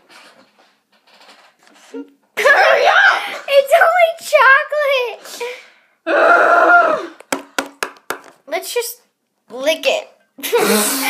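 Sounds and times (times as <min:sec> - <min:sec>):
girls vocalizing high-pitched: 0:02.4 - 0:03.8, 0:06.0 - 0:07.2.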